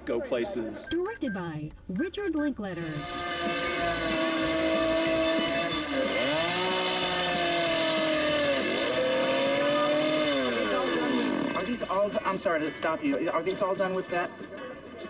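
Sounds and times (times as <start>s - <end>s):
chainsaw cutting wood: 2.9s - 12.3s.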